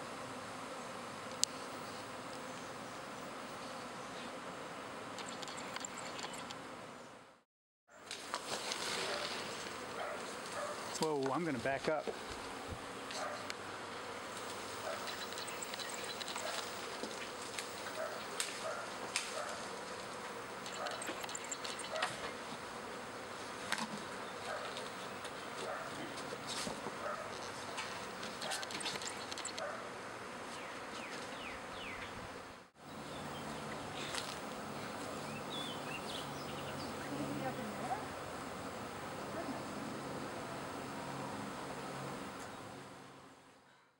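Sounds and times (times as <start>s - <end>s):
ticks of bees passing close: 0.0s - 7.3s, 8.0s - 43.5s
bee swarm buzzing: 0.0s - 7.4s, 8.0s - 43.6s.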